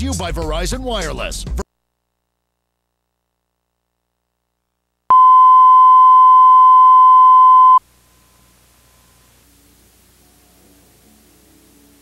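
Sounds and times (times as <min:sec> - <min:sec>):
electronic test tone: 0:05.1 - 0:07.8
faint hiss: 0:07.8 - 0:12.0.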